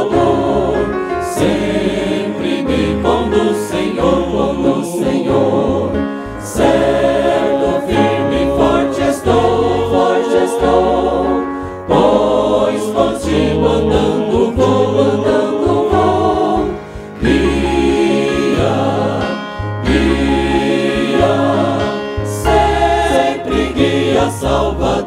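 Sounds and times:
choir singing a hymn in harmony: 0.0s - 25.0s.

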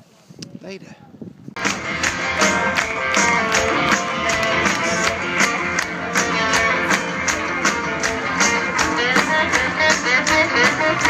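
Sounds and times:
audience clapping along: 1.6s - 11.0s
live rock band playing: 1.6s - 11.0s.

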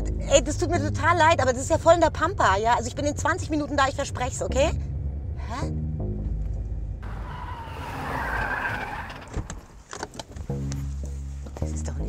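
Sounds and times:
low engine rumble: 0.0s - 12.0s
tyres screeching under braking: 7.0s - 10.3s.

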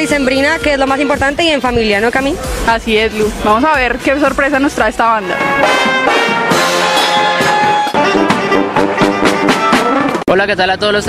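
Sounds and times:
brass band playing funk music: 0.0s - 10.4s
drum kit: 0.0s - 10.4s.

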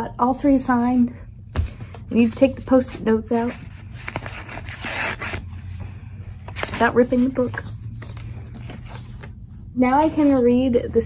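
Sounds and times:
paper rustling: 1.6s - 10.7s.

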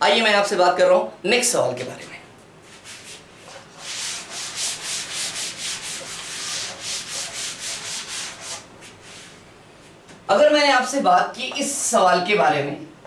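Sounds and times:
duster wiping chalkboard: 2.6s - 10.0s.

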